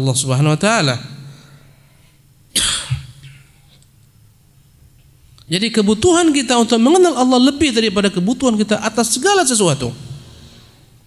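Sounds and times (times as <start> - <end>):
man coughing: 2.5 - 3.8.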